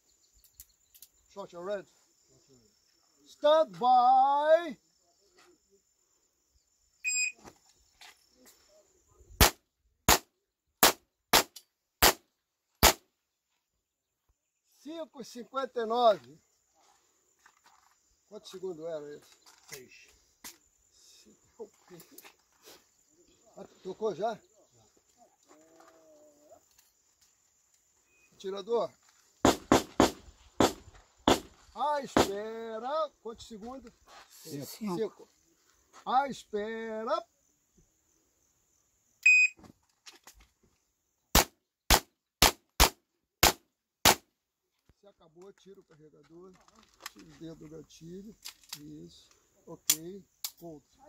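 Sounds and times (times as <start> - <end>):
faint insect whine: 0.0 - 10.7, 12.4 - 41.8, 44.8 - 51.0
shot timer beep: 7.1 - 7.4, 39.2 - 39.6
pistol shots: 9.4 - 12.2, 12.8 - 13.0, 41.4 - 44.2.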